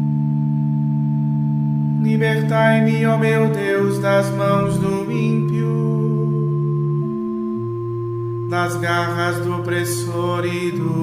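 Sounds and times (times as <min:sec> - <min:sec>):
low droning chord: 0:00.0 - 0:11.0.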